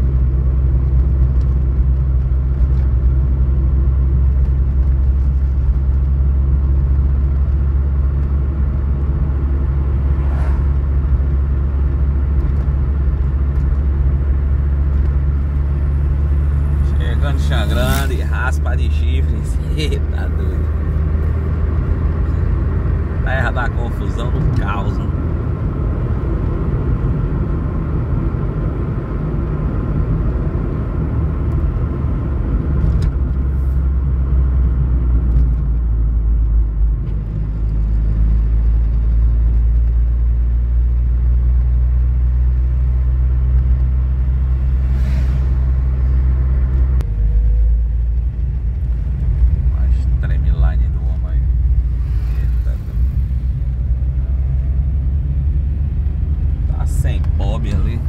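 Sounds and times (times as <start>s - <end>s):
car cabin engine and road hum: 0.0s - 58.0s.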